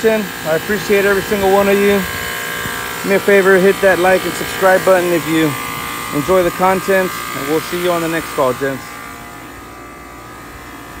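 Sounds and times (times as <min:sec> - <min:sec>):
dehumidifier humming and whining: 0:00.0 - 0:11.0.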